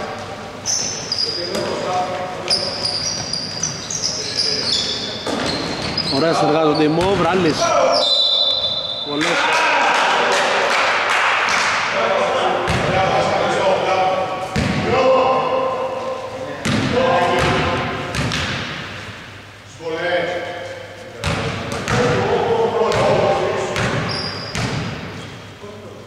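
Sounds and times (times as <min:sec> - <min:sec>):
players' voices and shouts: 0:06.1 - 0:18.1
referee's whistle: 0:07.9 - 0:09.2
basketball bouncing on wooden floor: 0:23.8 - 0:25.1.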